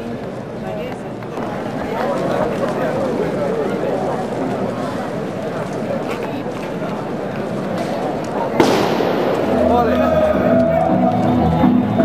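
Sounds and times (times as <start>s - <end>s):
crowd chatter: 0.0s - 12.0s
sharp bang with hissing tail: 8.6s - 9.9s
music: 9.4s - 12.0s.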